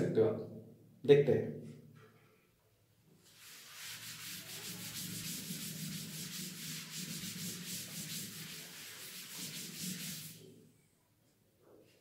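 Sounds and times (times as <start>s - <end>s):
duster scrubbing a chalkboard: 3.2s - 10.6s.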